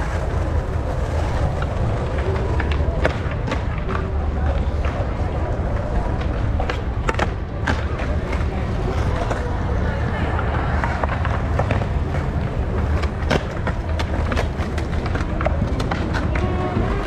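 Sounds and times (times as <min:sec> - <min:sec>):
skateboard clacks: 0:00.0 - 0:17.0
skateboard wheels rumbling on stone: 0:00.0 - 0:17.0.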